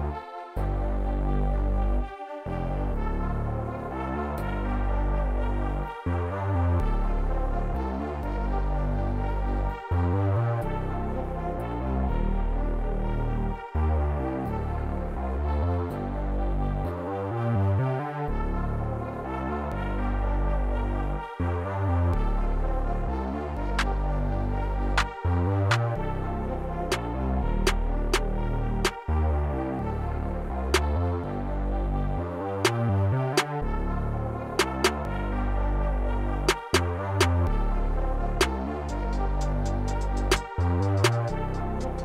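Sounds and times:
deep synth bass: 0.0s - 42.0s
sustained synth chords: 0.0s - 42.0s.

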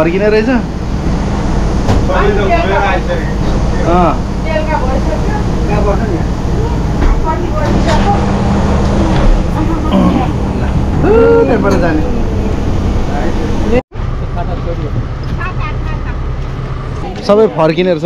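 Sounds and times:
bus engine rumble: 0.0s - 18.0s
outdoor background noise: 0.0s - 18.0s.

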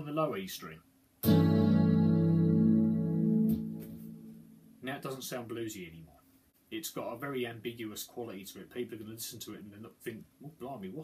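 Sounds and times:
electric guitar chord ringing: 1.2s - 4.8s.

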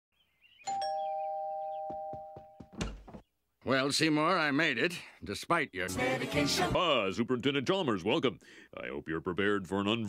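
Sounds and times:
two-note doorbell chime: 0.7s - 2.6s.

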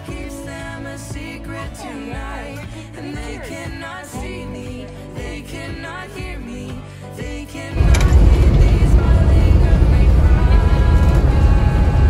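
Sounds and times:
music with singing: 0.0s - 12.0s
bus rumbling on highway: 7.8s - 12.0s.

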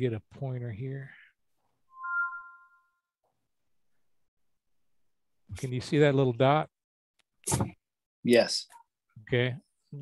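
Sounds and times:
two-tone electronic chime: 1.9s - 3.0s.

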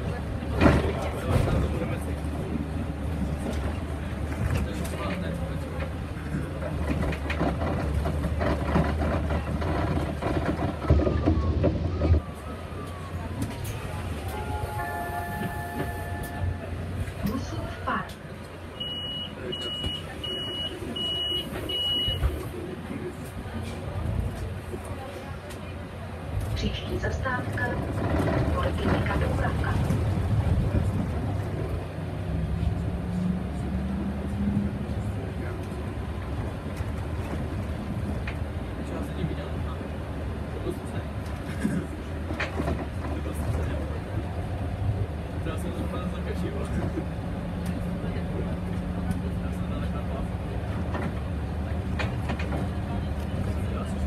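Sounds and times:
bus engine and road noise: 0.0s - 54.0s.

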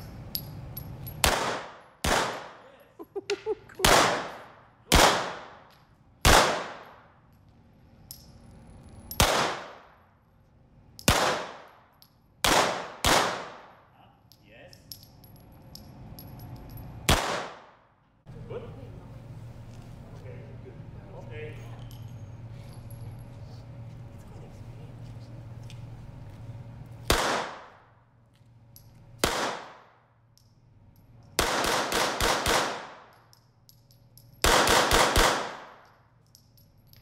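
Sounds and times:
gunshots echoing indoors: 1.2s - 2.6s, 3.8s - 5.6s, 6.2s - 7.1s, 9.2s - 10.0s, 11.0s - 11.8s, 12.4s - 13.8s, 17.1s - 17.9s, 27.0s - 27.8s, 29.2s - 30.0s, 31.4s - 33.2s, 34.4s - 35.9s.

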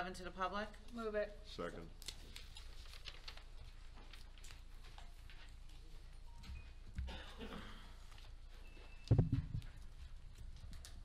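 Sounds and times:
dull low thumps: 9.1s - 9.7s.

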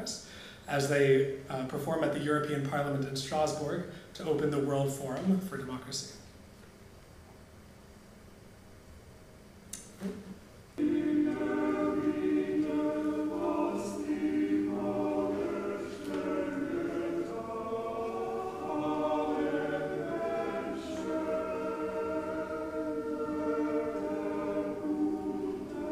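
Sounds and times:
male vocal ensemble singing: 10.8s - 25.9s.

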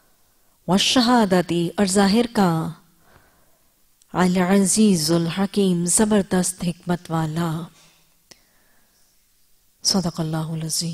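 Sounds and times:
woman speaking: 0.7s - 2.8s, 4.1s - 7.8s, 9.8s - 10.9s.

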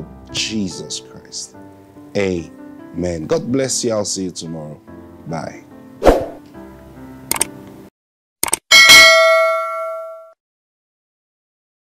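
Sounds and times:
background music: 0.0s - 7.9s
clicks: 7.3s - 7.5s, 8.4s - 8.6s
bright bell ding: 8.7s - 10.4s.

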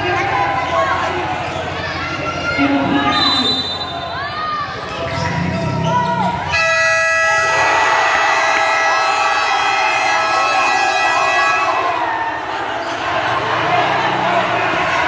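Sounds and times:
crowd cheering: 0.0s - 15.0s
game buzzer long steady tone: 6.6s - 7.7s.

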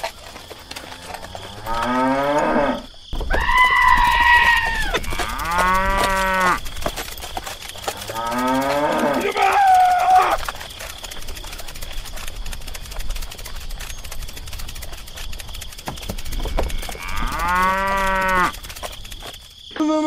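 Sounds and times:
cattle mooing: 1.0s - 2.9s, 4.3s - 6.6s, 7.9s - 10.0s, 16.6s - 18.6s.

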